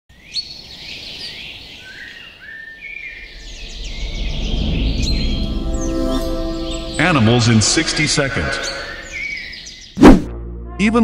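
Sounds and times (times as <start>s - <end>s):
birds chirping and whistling: 0.2s - 10.2s
low rumble: 3.0s - 9.8s
held musical chord: 3.2s - 9.6s.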